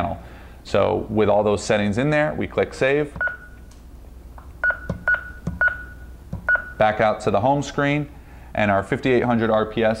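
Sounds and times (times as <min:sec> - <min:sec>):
alarm panel key-press beeps: 0:03.2 - 0:03.6, 0:04.6 - 0:06.8.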